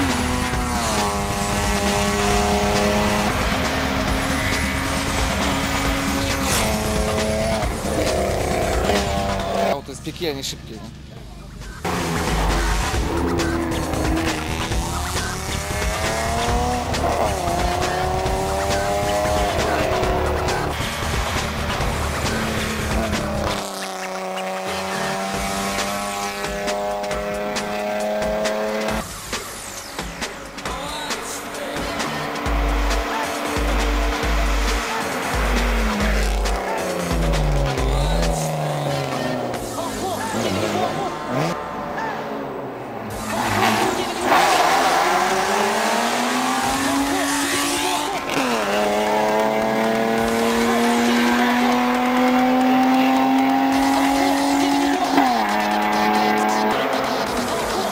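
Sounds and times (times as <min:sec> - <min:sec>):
background music with steady beat: 0:00.0 - 0:41.6, 0:43.4 - 0:57.9
race car engine revving: 0:00.0 - 0:57.9.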